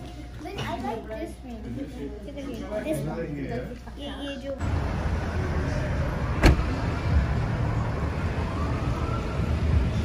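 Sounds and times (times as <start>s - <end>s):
car low rumble: 4.6s - 10.0s.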